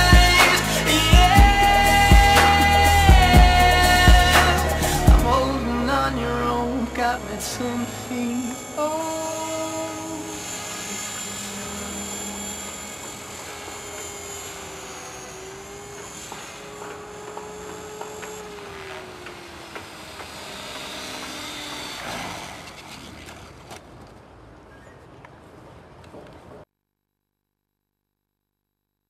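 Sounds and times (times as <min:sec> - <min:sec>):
helicopter motor high whine: 0:00.0 - 0:23.8
lower helicopter tone: 0:00.0 - 0:23.8.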